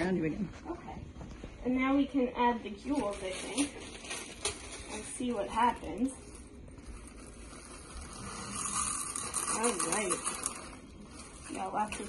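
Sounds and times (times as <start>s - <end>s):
sparkles pouring hiss: 4.8s - 12.0s.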